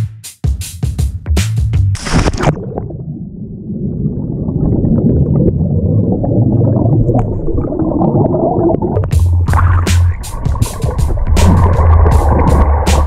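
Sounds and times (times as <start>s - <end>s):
muffled underwater churning water: 2.0s - 13.0s
low rumble: 2.2s - 13.0s.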